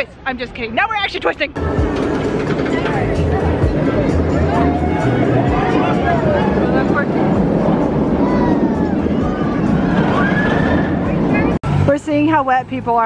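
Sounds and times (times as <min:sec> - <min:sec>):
roller coaster rumbling on track: 0:00.0 - 0:13.0
crowd chatter: 0:01.6 - 0:11.8.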